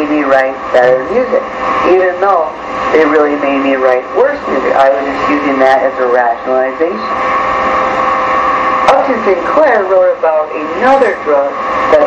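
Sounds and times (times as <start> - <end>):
electrical hum and hiss: 0.0 - 12.0
steady whining tones: 0.0 - 12.0.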